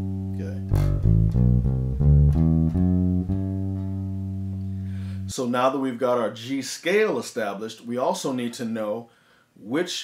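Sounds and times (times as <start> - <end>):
electric bass guitar notes: 0.0 - 5.4.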